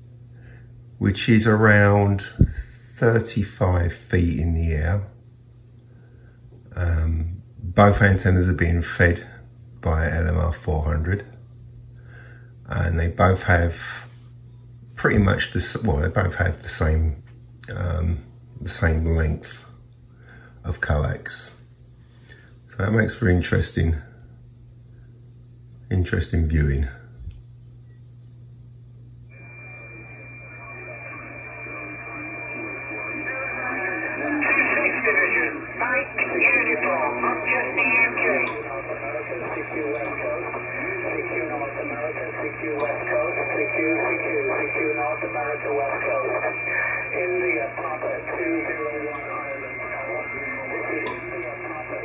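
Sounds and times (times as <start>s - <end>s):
low steady hum: 0.0s - 52.0s
radio band hiss: 1.0s - 5.2s, 12.2s - 14.3s, 29.3s - 52.0s
faint steady whistle: 29.3s - 33.9s.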